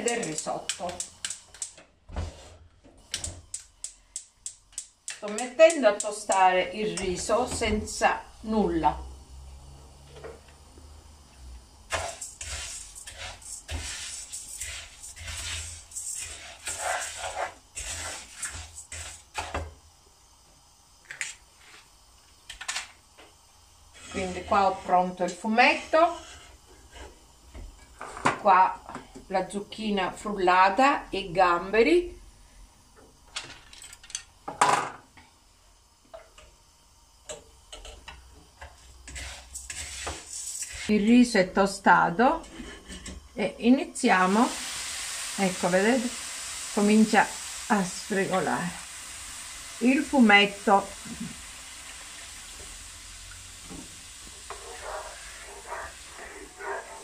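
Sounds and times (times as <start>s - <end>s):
spoon stirring rice in a pan: 11.9s - 19.8s, 23.9s - 28.1s, 37.3s - 40.9s, 53.6s - 57.0s.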